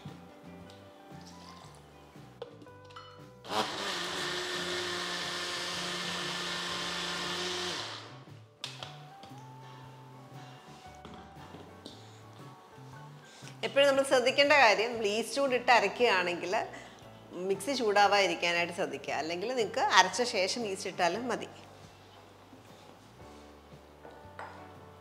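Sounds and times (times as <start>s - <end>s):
mixer grinder grinding batter: 3.5s - 8.2s.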